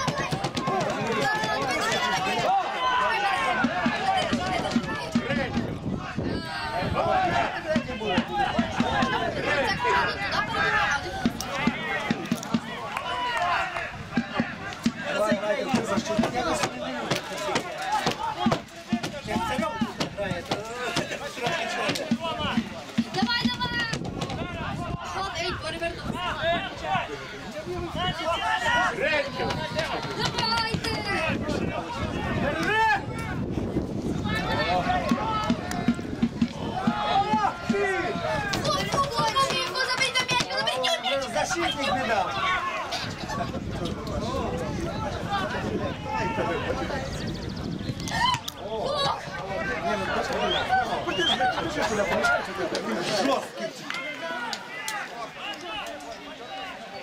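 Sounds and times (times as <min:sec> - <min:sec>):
people talking and calling out: 0:00.0 - 0:57.0.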